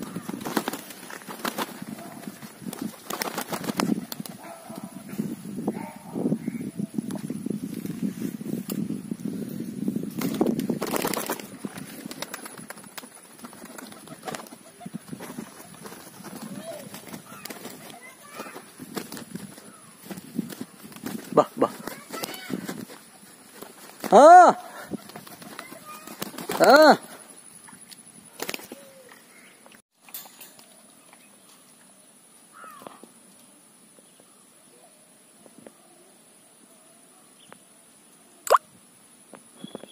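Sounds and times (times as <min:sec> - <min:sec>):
rustles: 0:00.0 - 0:39.9.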